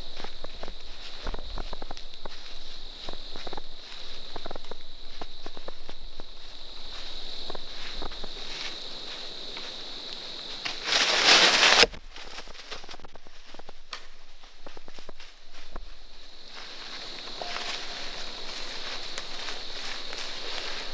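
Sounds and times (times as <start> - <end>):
footsteps crunching dry leaves: 0.0 - 20.9
steady high-pitched tone: 17.2 - 20.3.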